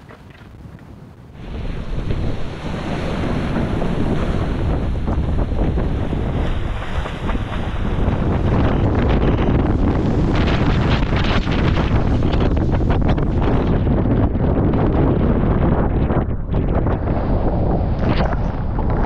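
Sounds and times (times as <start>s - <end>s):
wind buffeting microphone: 0.0s - 19.0s
sea water rushing and breaking: 1.3s - 19.0s.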